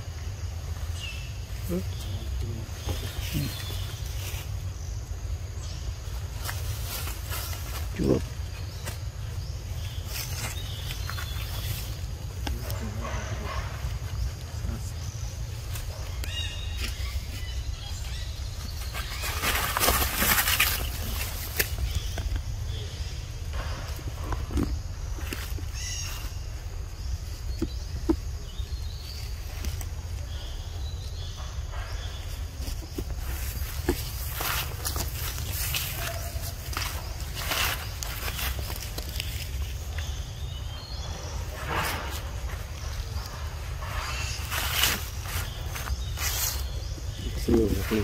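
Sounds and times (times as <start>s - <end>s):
footsteps through leaf litter: 16.3s - 22.1s, 33.1s - 48.0s.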